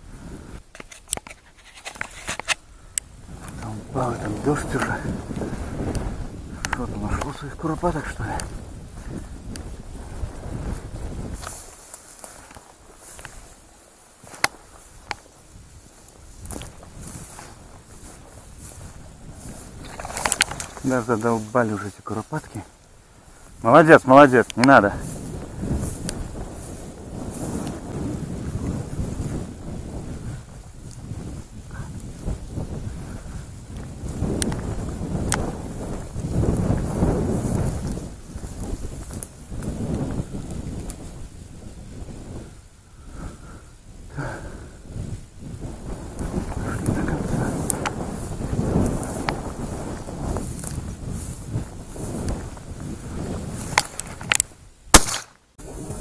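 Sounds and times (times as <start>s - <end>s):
wind buffeting microphone: 0.0s - 56.0s
dry grass brushing: 0.7s - 42.3s, 45.0s - 56.0s.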